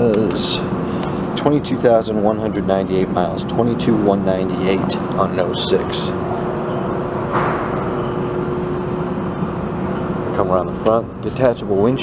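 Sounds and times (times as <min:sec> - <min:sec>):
constant mid-pitched tone: 0:00.0 - 0:12.0
steady hum and hiss: 0:00.0 - 0:12.0.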